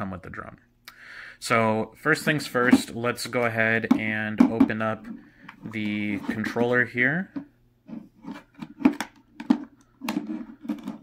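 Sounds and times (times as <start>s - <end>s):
handling noise: 2.3s - 11.0s
plastic clicks and knocks: 8.4s - 11.0s.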